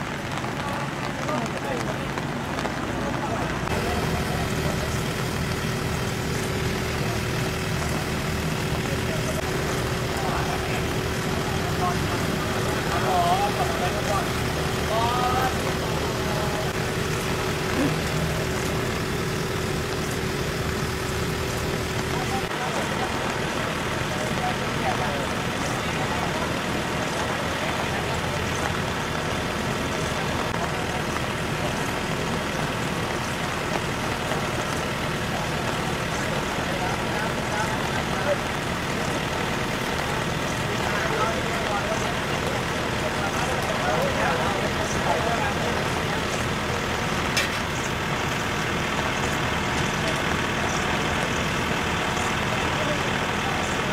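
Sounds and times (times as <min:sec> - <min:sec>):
faint voices: 0:00.0 - 0:53.9
road traffic: 0:00.0 - 0:53.9
vehicles idling: 0:00.0 - 0:53.9
steady hum: 0:03.4 - 0:28.0.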